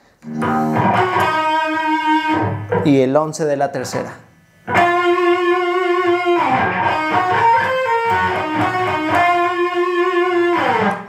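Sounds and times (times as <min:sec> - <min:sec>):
electric guitar held note: 0:00.2 - 0:01.4.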